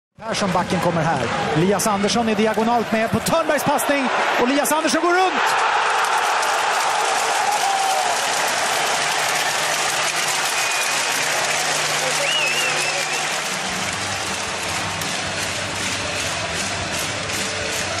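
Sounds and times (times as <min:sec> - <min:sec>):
crowd cheering and applauding: 0:02.3 - 0:18.0.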